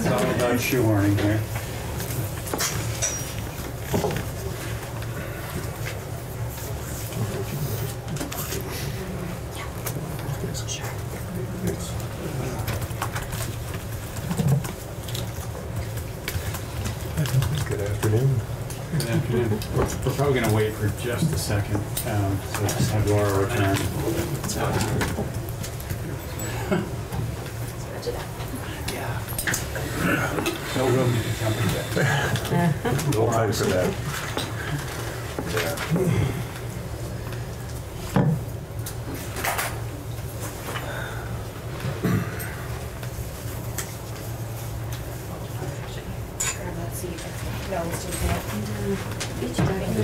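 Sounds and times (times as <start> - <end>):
people shifting in seats: 0.0 - 45.5
steady low hum: 0.0 - 50.0.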